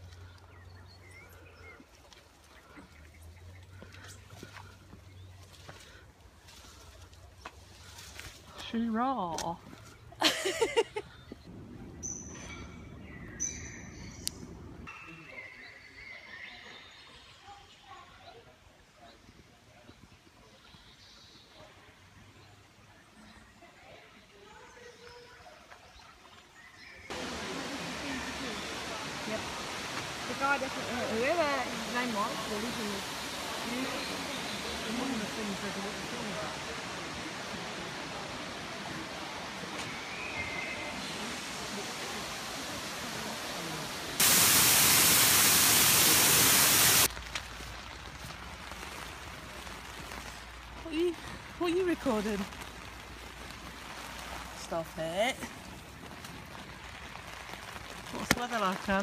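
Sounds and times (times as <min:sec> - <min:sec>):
low steady rumble: 0:11.4 - 0:14.9
voices: 0:27.1 - 0:47.1
waterfall rushing: 0:27.1 - 0:47.1.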